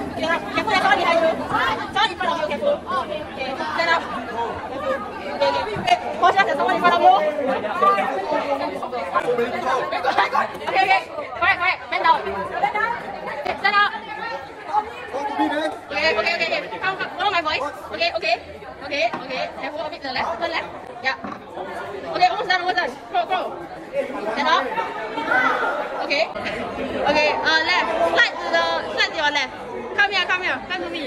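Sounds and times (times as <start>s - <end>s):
young people chattering: 0.0s - 31.0s.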